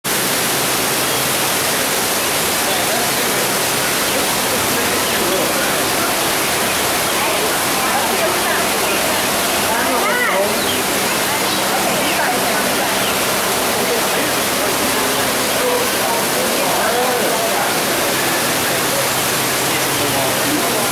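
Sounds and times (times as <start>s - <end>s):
waterfall rushing into tank: 0.0s - 20.9s
people talking faintly: 2.5s - 20.9s.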